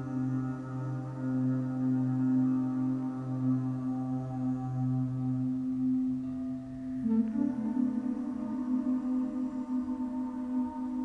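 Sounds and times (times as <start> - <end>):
ambient droning music: 0.0 - 11.0.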